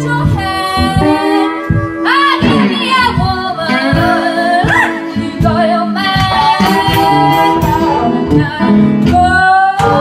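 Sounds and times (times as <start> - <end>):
blues band playing: 0.0 - 10.0
woman singing bending notes: 0.0 - 10.0.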